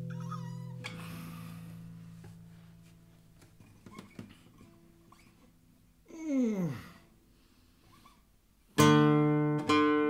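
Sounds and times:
guitar chord ringing: 0.0 - 3.0.

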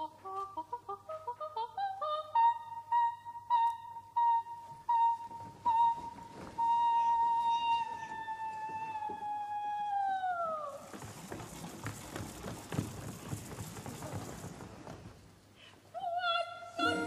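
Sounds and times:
operatic soprano singing: 0.0 - 10.8, 15.9 - 17.0.

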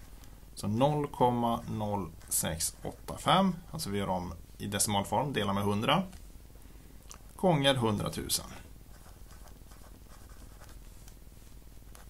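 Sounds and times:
pen scratching on paper: 8.9 - 10.8.

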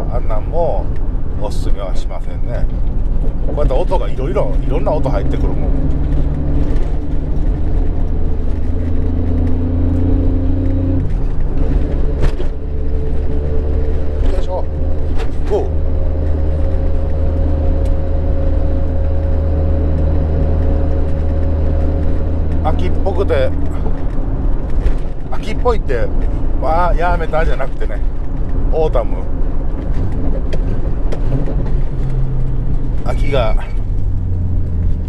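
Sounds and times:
car engine droning in cabin: 0.0 - 35.0.

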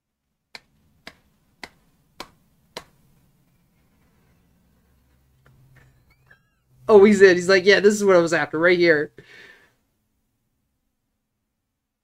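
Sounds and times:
hand claps: 0.5 - 3.1.

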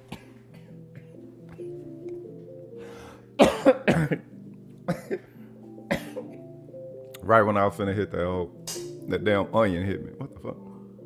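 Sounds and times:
soft background music: 0.0 - 11.0
man coughing: 3.4 - 4.3, 4.9 - 5.3, 5.9 - 6.4.

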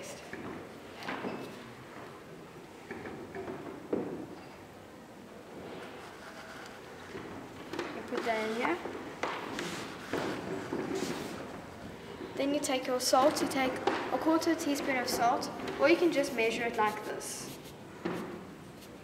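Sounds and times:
murmur of large hall: 0.0 - 19.0.

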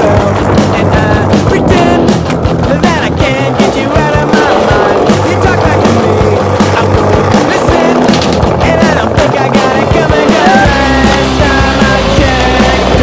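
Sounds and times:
loud music: 0.0 - 13.0
skateboard clacks: 0.0 - 13.0
skateboard rolling on stone paving: 0.0 - 13.0.

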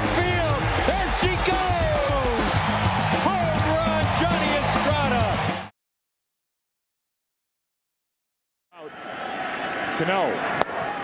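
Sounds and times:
crowd cheering and shouting: 0.0 - 5.7, 8.8 - 11.0.

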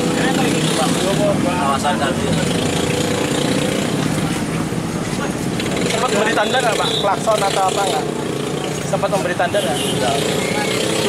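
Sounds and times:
people talking: 0.0 - 2.7, 5.0 - 11.0
road traffic noise: 0.0 - 11.0.

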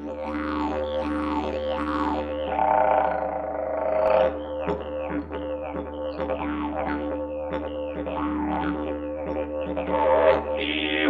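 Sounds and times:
didgeridoo drone: 0.0 - 11.0.

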